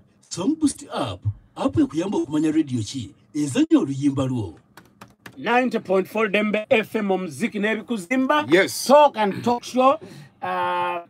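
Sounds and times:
keyboard keys clicking: 4.8s - 5.4s.

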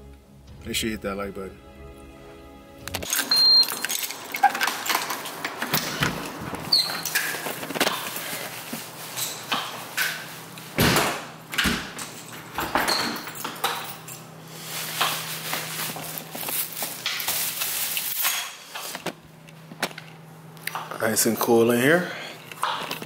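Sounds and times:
steady low hum: 0.0s - 4.4s.

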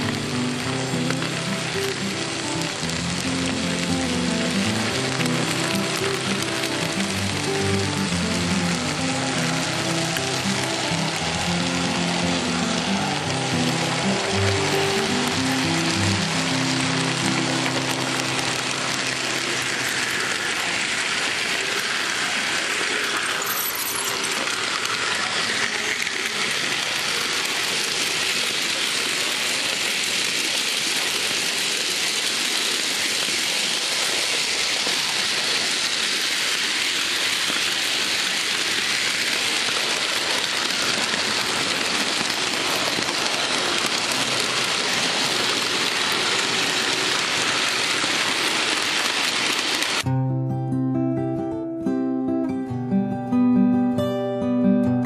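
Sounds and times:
model train rolling on metal track: 0.0s - 50.1s.

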